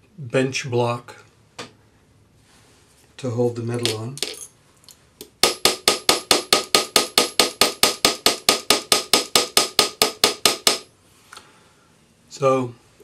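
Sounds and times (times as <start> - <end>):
hammer striking metal strip: 5.2 - 10.9.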